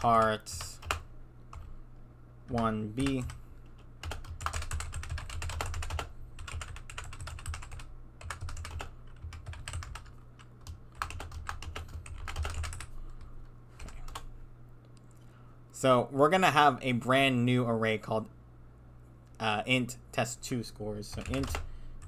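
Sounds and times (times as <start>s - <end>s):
typing on computer keyboard: 0.0s - 1.7s, 2.5s - 13.2s, 21.1s - 21.7s.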